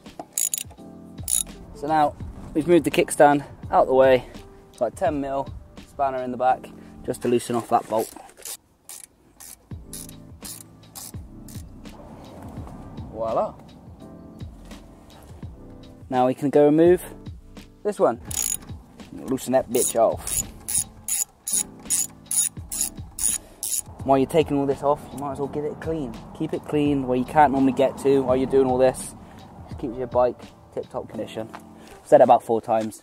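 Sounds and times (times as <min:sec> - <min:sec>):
background music with a beat: 0:00.0 - 0:02.5, 0:09.7 - 0:16.1, 0:17.2 - 0:24.2, 0:29.6 - 0:31.7
ratcheting spanner clicking: 0:00.2 - 0:01.6, 0:08.4 - 0:11.7, 0:18.2 - 0:18.8, 0:19.7 - 0:23.9.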